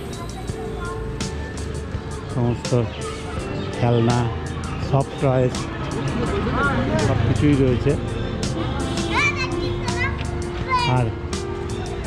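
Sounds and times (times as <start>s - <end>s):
background music: 0.0s - 12.0s
child calling out: 0.1s - 1.2s, 9.1s - 11.1s.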